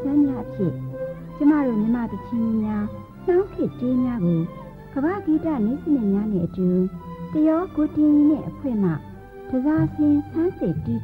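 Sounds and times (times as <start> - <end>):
low accompanying tones: 0.0 - 11.0
violin melody with sliding notes: 0.0 - 11.0.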